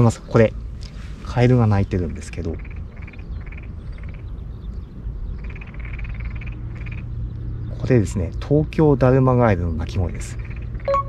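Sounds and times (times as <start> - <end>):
frogs croaking: 0.0 - 11.0.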